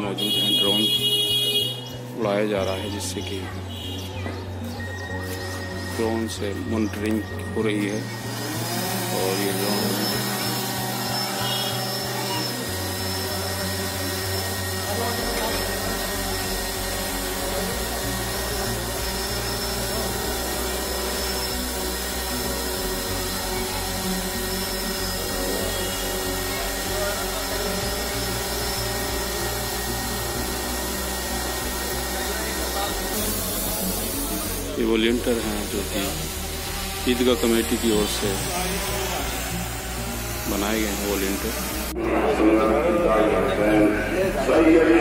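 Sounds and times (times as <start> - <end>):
drone motors buzzing: 0.0 - 45.0.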